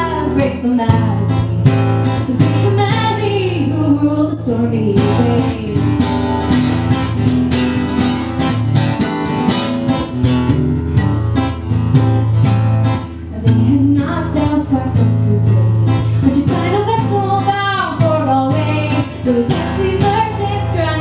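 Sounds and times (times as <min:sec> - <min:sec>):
acoustic guitar strumming: 0:00.0 - 0:21.0.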